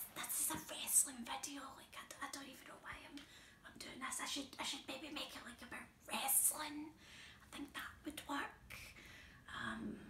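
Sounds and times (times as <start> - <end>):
woman whispering: 0.0 - 10.0.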